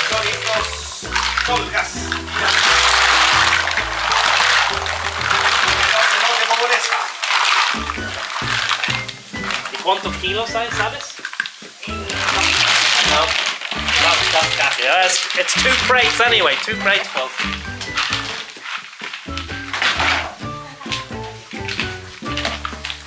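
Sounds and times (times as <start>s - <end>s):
background music: 0.0s - 6.4s, 7.4s - 23.0s
water hissing on hot stones: 0.0s - 23.0s.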